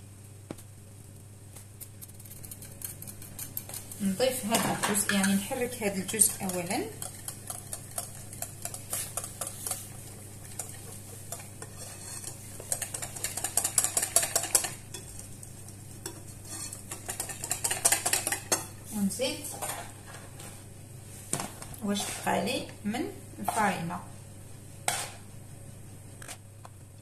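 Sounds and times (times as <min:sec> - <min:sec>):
whisk beating in glass bowl: 0:04.6 - 0:15.2, 0:16.0 - 0:18.7.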